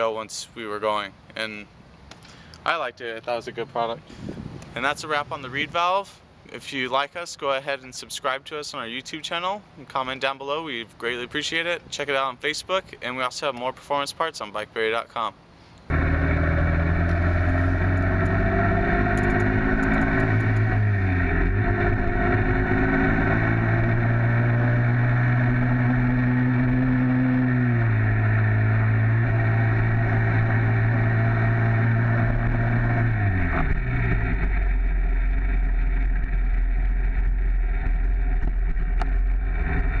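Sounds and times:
small two-stroke engine running: 0:15.9 - 0:40.0.

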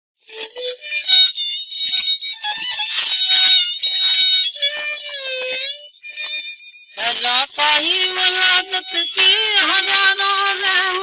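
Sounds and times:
old gramophone recording of melodic music: 0:07.0 - 0:11.0.

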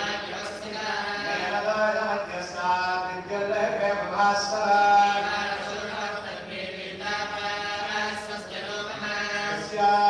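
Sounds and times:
man chanting into a microphone: 0:01.3 - 0:05.3, 0:09.2 - 0:10.0.

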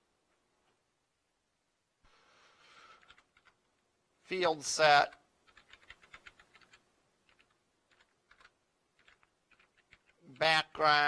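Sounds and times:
computer keyboard typing: 0:03.0 - 0:03.6, 0:05.0 - 0:10.5.

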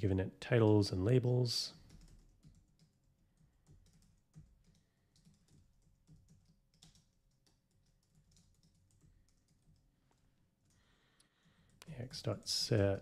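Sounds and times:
keyboard typing: 0:01.8 - 0:11.9.

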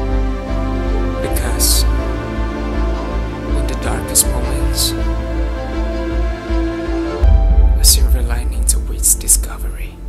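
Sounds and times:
background music with bass drone: 0:00.0 - 0:10.0
person whispering: 0:07.7 - 0:10.0.

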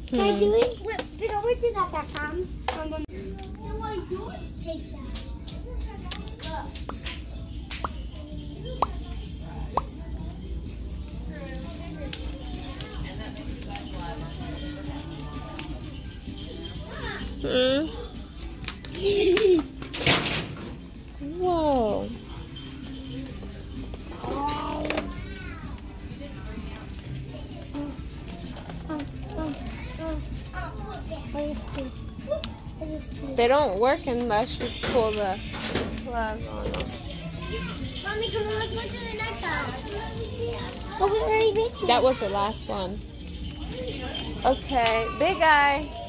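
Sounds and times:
faint music: 0:00.0 - 0:46.0
children chattering: 0:08.1 - 0:19.4, 0:22.1 - 0:33.6, 0:36.6 - 0:46.0.

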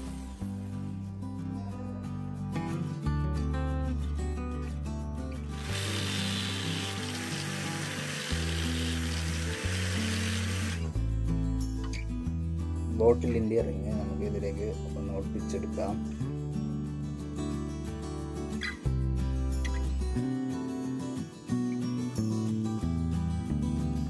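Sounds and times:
background music: 0:00.0 - 0:24.0
angle grinder sanding wood: 0:05.5 - 0:10.9.

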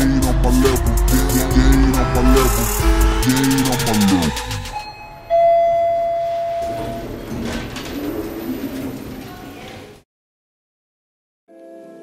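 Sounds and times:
music sliding down in pitch: 0:00.0 - 0:04.8
elevator chime: 0:04.6 - 0:07.3.

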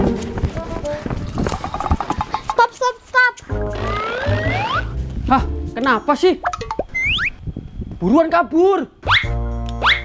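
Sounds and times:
background music: 0:00.0 - 0:07.0, 0:09.0 - 0:10.0
bass beat: 0:03.5 - 0:05.8
warbling whinny-like calls: 0:03.7 - 0:04.9
rising whistle glide: 0:03.8 - 0:05.0, 0:06.9 - 0:07.5.

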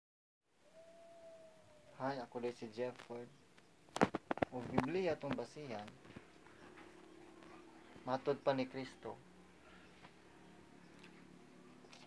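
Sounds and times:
faint room hiss: 0:00.5 - 0:11.9.

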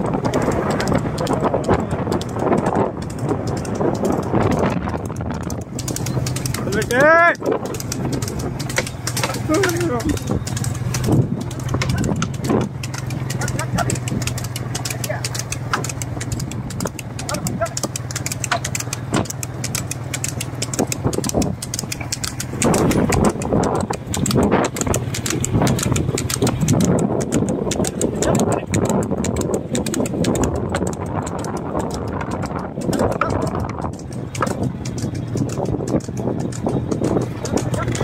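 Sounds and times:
hoofbeats on tarmac: 0:00.0 - 0:38.0
motorcycle engine running: 0:00.0 - 0:38.0
wind noise: 0:00.0 - 0:38.0.

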